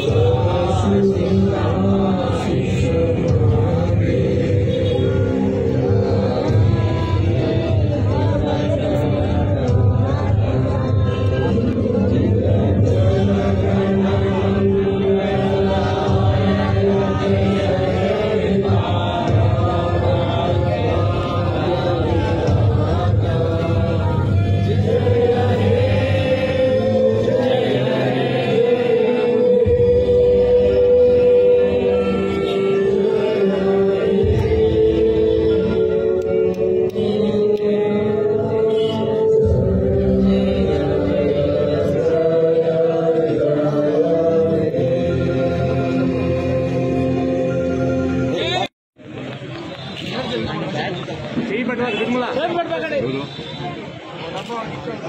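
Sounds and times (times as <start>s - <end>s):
crowd singing in unison: 0.0s - 49.6s.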